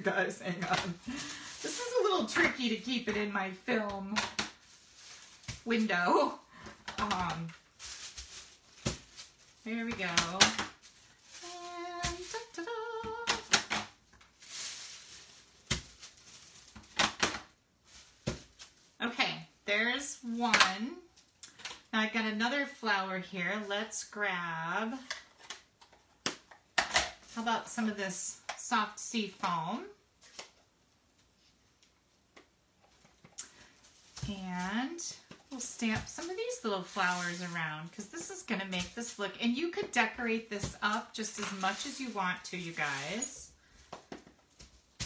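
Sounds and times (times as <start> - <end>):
woman speaking: 0.0 - 4.3, 5.6 - 7.6, 9.6 - 10.6, 11.4 - 13.4, 19.0 - 21.1, 22.0 - 25.1, 27.4 - 30.0, 34.2 - 43.5.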